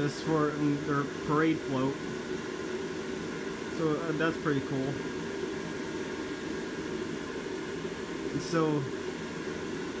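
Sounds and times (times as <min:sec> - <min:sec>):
blower fan whirring: 0:00.0 - 0:10.0.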